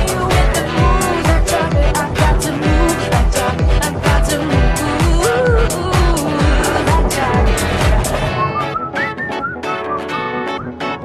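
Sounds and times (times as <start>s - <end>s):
pop song with sung vocals: 0.0s - 9.3s
whistled melody over guitar: 7.0s - 11.0s.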